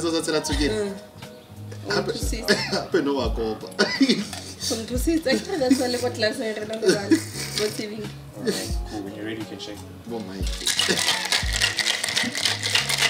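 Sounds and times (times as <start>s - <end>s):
background music: 0.0s - 13.0s
ice rattling in cocktail shaker: 4.1s - 4.9s, 10.2s - 13.0s.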